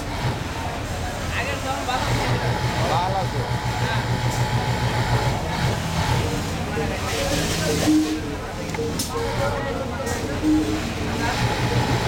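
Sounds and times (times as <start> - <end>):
sewing machine running: 1.8 - 6.7, 10.7 - 12.0.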